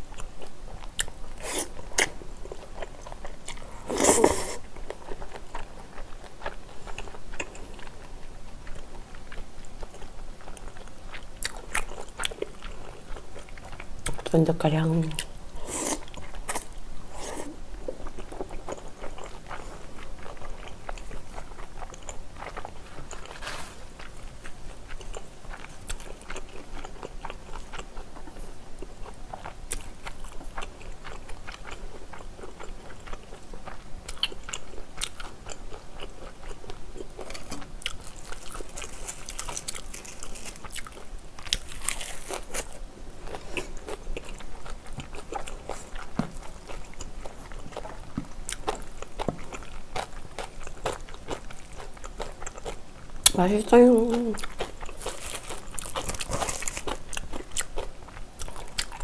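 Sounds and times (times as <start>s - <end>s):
wet chewing and crunching: 0.0s - 14.4s, 15.0s - 59.0s
crisp lettuce crackling: 22.7s - 24.4s, 37.2s - 42.8s, 53.8s - 57.5s.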